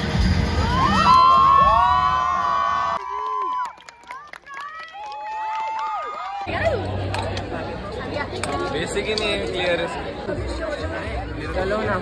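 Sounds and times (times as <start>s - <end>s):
crowd cheering and whooping: 0.2s - 6.9s.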